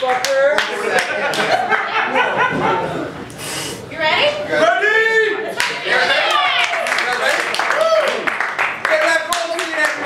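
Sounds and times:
hand claps: 0.0s - 1.6s, 5.6s - 5.8s, 6.6s - 10.0s
performers talking and exclaiming: 0.0s - 10.0s.

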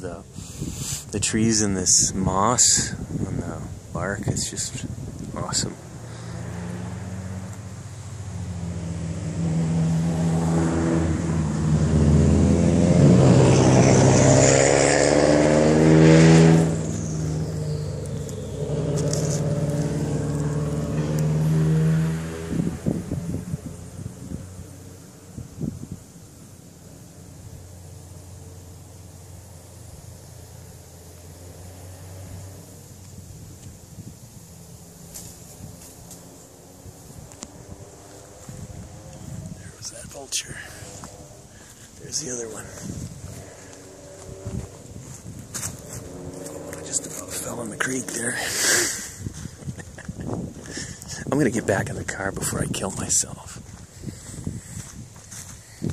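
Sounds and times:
vehicle engine passing by: 5.4s - 55.9s.

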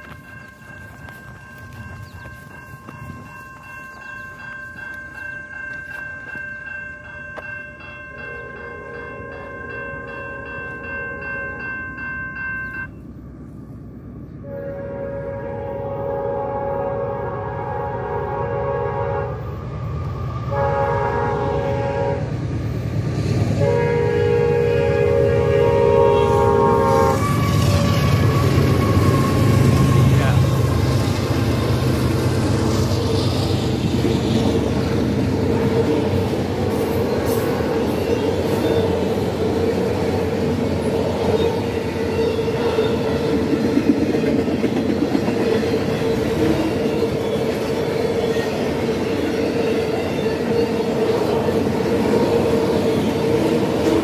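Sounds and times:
train cars rolling on rails: 0.0s - 54.0s
train horn blasts: 8.2s - 10.6s, 14.4s - 19.6s, 20.5s - 22.4s, 23.6s - 30.8s.

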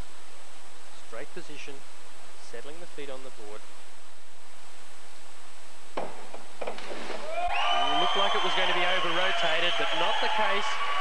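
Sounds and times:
steady arena hiss: 0.0s - 11.0s
diving board knock: 6.0s - 7.2s.

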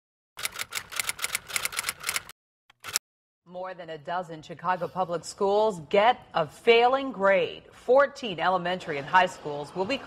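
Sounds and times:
typewriter keys clacking: 0.4s - 3.0s.

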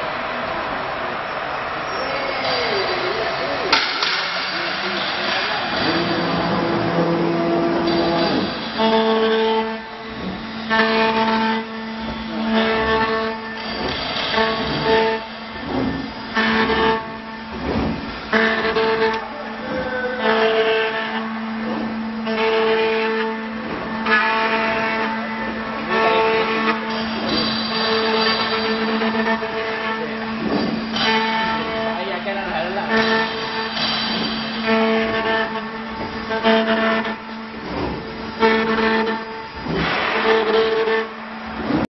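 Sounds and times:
machine whining tones: 0.0s - 41.9s
router machine running: 0.0s - 41.9s.

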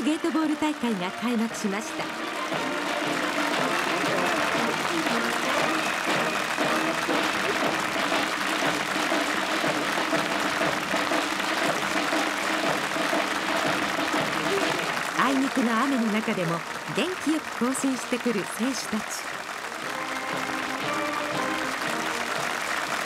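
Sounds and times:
crowd applause: 0.0s - 23.0s
music: 0.0s - 23.0s.

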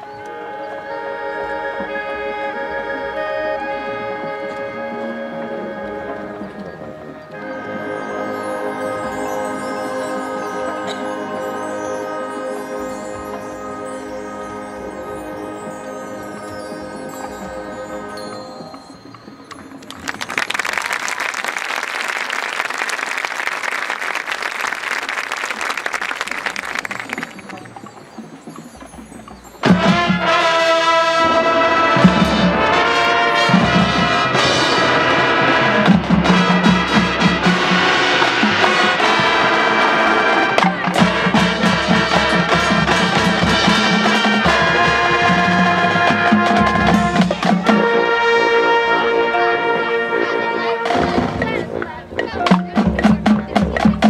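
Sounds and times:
brass band chords: 0.0s - 19.5s, 29.6s - 54.0s
percussion hits: 25.6s - 49.9s, 50.6s - 54.0s.

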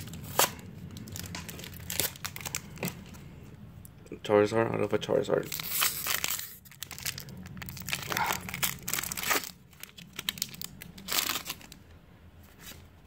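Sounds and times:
foil wrapper crinkling and tearing: 0.0s - 3.1s, 5.4s - 11.8s.

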